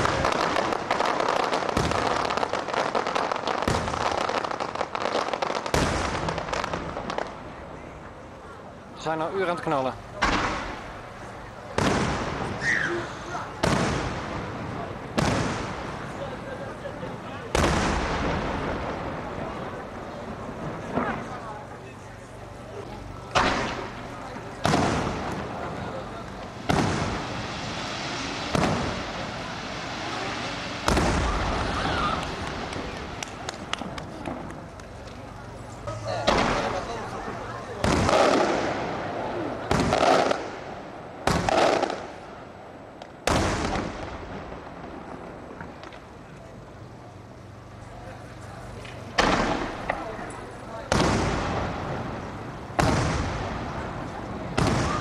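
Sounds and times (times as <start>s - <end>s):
fireworks bangs: 0.0s - 8.4s, 9.0s - 55.0s.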